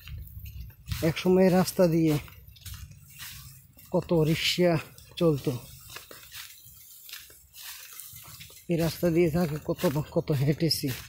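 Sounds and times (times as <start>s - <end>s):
wind noise on microphone: 0.0s - 3.2s.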